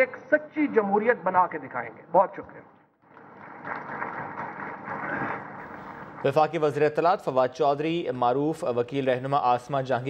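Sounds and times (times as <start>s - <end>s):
audience applauding: 3.1s - 6.5s.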